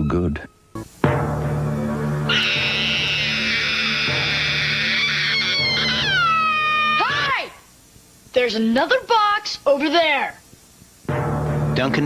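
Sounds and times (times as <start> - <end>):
girl screaming: 2.3 - 7.6.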